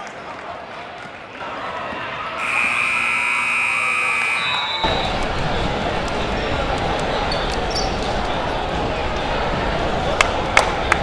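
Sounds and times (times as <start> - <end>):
crowd noise: 0.0 - 11.0
scoreboard buzzer tone: 2.4 - 4.9.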